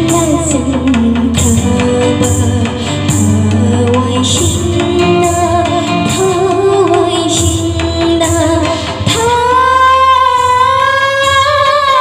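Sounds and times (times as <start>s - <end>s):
instrumental backing: 0.0s - 12.0s
woman singing: 0.0s - 12.0s.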